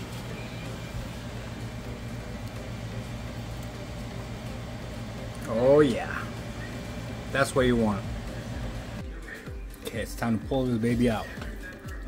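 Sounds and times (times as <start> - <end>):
kitchen fan humming: 0.0 - 12.0.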